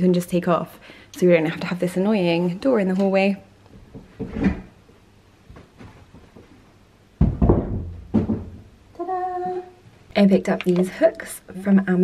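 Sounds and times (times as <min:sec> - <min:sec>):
wood knocking: 0:07.2 - 0:08.7
wooden door thunk: 0:07.2 - 0:08.7.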